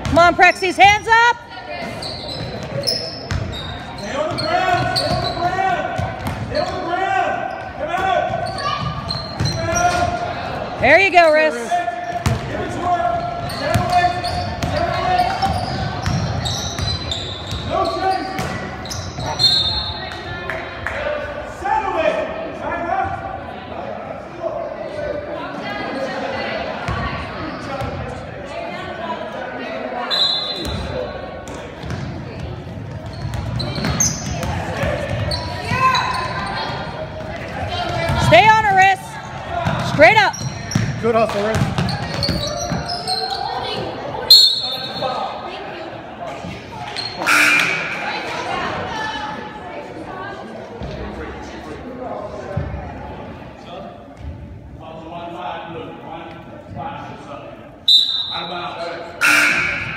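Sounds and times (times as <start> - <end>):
sneaker squeaks: 0.0 - 10.3, 12.0 - 12.5, 13.1 - 20.3, 30.0 - 45.4, 46.4 - 48.8, 57.9 - 59.9
basketball bouncing on hardwood: 40.8 - 42.8
short high whistle tones: 44.3 - 45.1, 57.9 - 58.6
people calling out: 47.0 - 48.9, 59.2 - 59.9.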